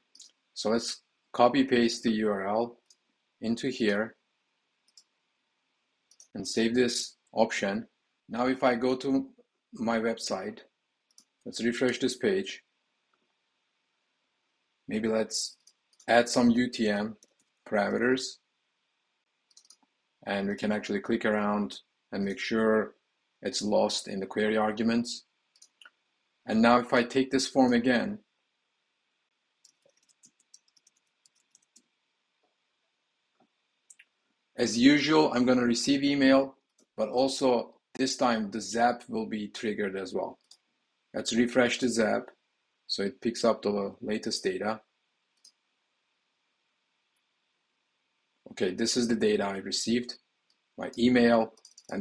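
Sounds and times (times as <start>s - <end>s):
computer mouse clicks: 4.8s - 5.2s, 6.1s - 6.3s, 11.1s - 12.0s, 15.5s - 16.1s, 19.4s - 19.9s, 25.5s - 26.0s, 29.6s - 31.9s, 40.4s - 40.7s, 45.3s - 45.6s, 51.6s - 52.0s
keyboard typing clicks: 19.5s - 19.8s, 29.6s - 31.9s, 51.6s - 52.0s.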